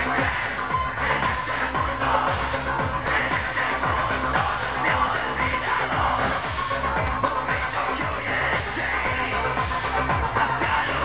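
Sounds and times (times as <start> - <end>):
electro-industrial music: 0.0 - 11.0
steady kick drum: 0.0 - 11.0.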